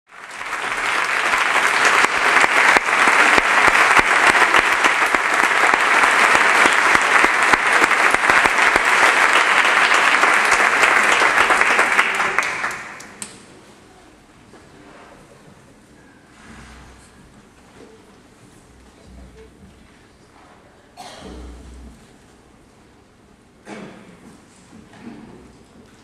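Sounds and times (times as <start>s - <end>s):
audience applause: 0.1s - 13.5s.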